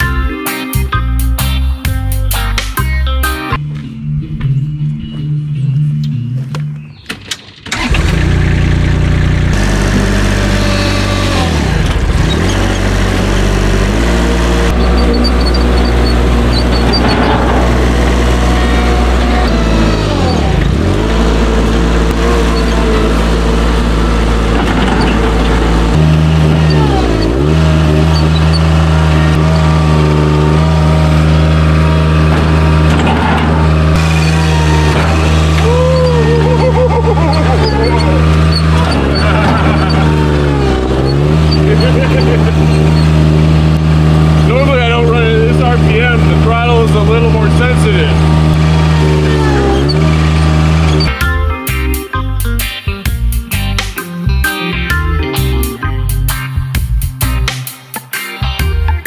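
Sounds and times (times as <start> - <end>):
loader engine running: 1.0 - 57.6.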